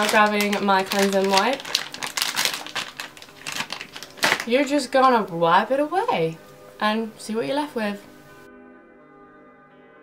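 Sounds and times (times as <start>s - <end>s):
plastic wet-wipe packet crinkling: 0.0s - 5.3s.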